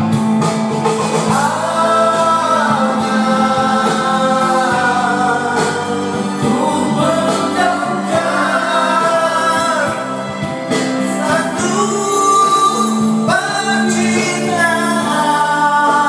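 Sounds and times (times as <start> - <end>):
karaoke backing track: 0.0 - 16.0
man singing into a microphone: 1.3 - 16.0.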